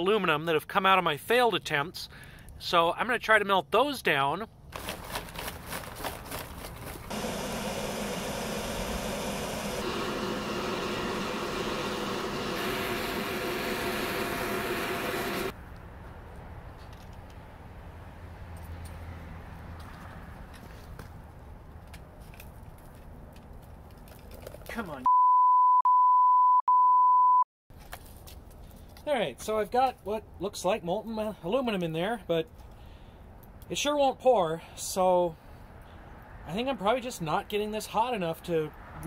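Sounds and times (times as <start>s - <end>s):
air blower fan humming: 7.1s - 15.5s.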